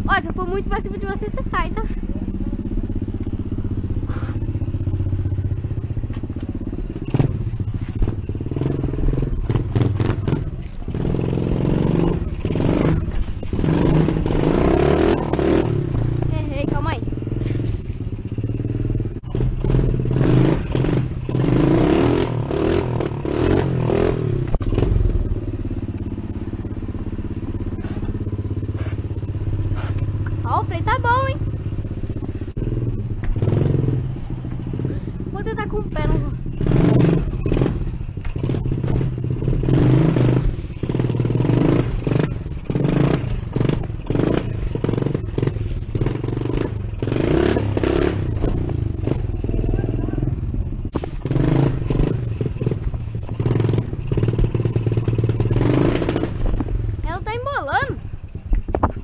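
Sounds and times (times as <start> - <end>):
mini motorcycle engine: 0.0 - 59.0
rattling: 0.0 - 59.0.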